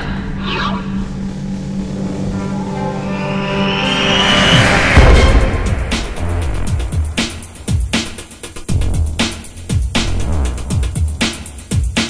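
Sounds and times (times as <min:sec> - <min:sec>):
sustained low tone: 0:00.0 - 0:07.7
downward whoosh: 0:01.7 - 0:11.4.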